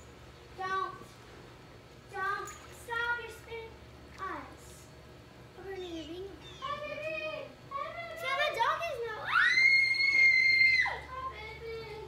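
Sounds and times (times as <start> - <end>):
child screaming: 9.2 - 11.3.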